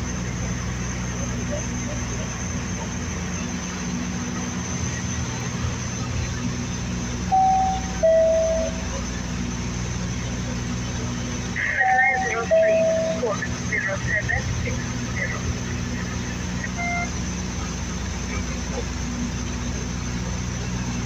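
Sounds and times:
turboprop engines droning: 0.0 - 21.0
two-note chime: 7.3 - 8.8.

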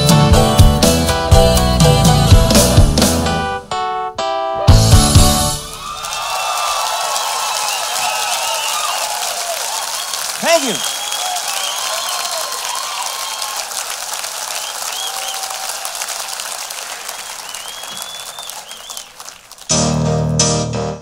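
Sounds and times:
keyboard playing: 0.0 - 5.8, 19.7 - 21.0
audience applauding and cheering: 5.5 - 19.8
loud whoop: 5.7 - 13.9, 14.5 - 16.5
whistles: 7.4 - 9.1, 9.7 - 13.6, 14.5 - 15.8, 16.9 - 19.5.

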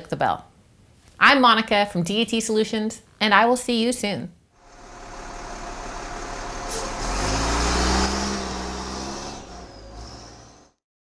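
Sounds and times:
engine revving: 4.6 - 10.8.

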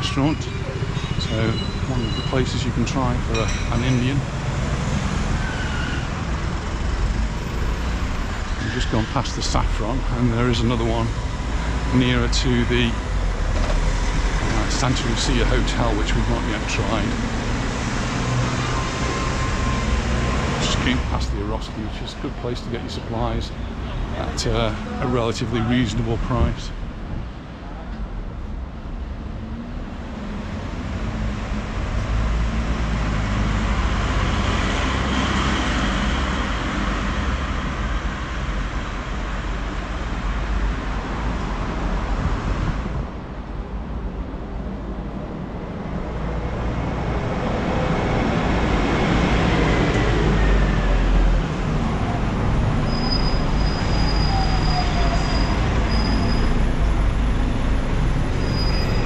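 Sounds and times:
low traffic rumble: 0.0 - 59.0
vehicles passing close by: 0.0 - 59.0.

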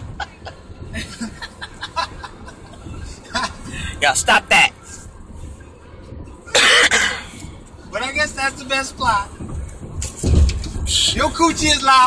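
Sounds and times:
road noise inside car: 0.0 - 12.0
person coughing: 6.5 - 7.3.

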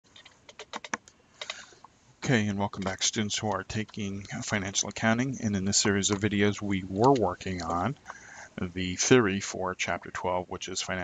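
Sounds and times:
computer keyboard keystrokes clicking: 0.2 - 1.6.

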